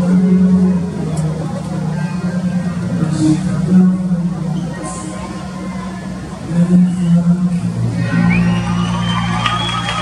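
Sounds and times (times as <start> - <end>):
distant amplified concert music: 0.0 - 10.0
crowd cheering and whooping: 8.0 - 10.0.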